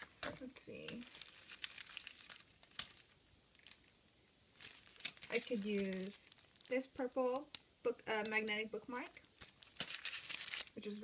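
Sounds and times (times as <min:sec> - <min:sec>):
stationery rustling: 0:00.0 - 0:06.8.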